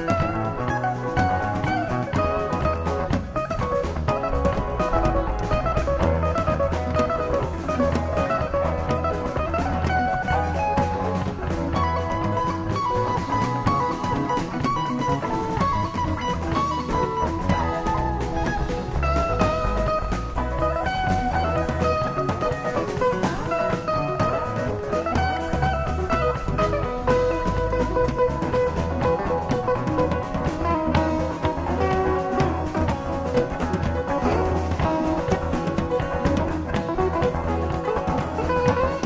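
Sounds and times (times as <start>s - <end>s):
electric guitar lead line: 0.0s - 39.0s
live rock band playing: 0.0s - 39.0s.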